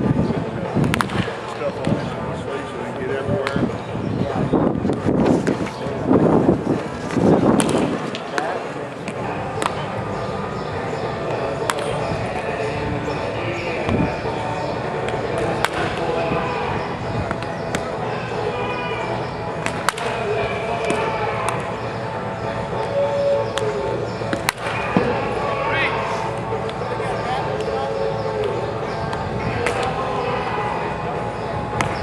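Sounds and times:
wooden bat hitting baseballs: 0.8s - 2.0s, 7.1s - 10.0s, 11.2s - 12.4s, 15.0s - 16.2s, 17.2s - 18.0s, 19.6s - 21.7s, 23.5s - 25.4s, 28.4s - 30.0s, 31.8s - 32.0s
music: 9.0s - 32.0s.

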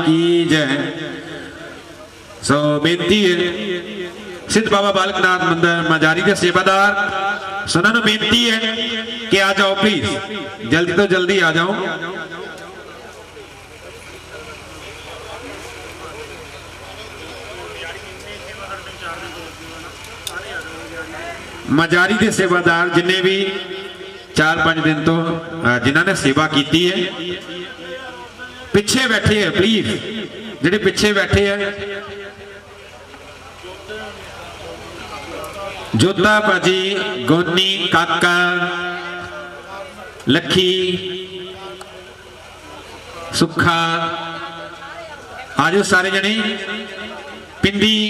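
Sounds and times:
man's amplified voice: 0.0s - 32.8s, 35.2s - 48.0s
steady low hum: 0.0s - 48.0s
background chatter: 0.8s - 2.5s, 10.2s - 48.0s.

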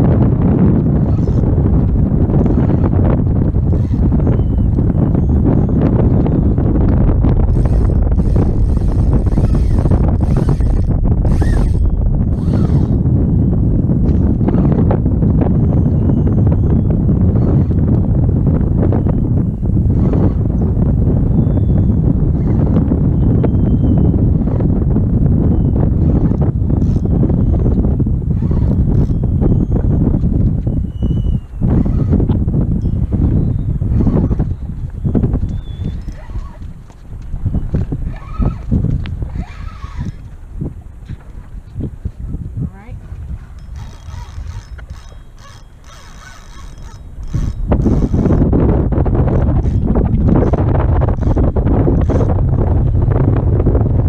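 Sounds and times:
strong wind buffeting microphone: 0.0s - 54.0s
faint high-pitched squeaks: 35.4s - 36.7s, 43.4s - 48.4s.

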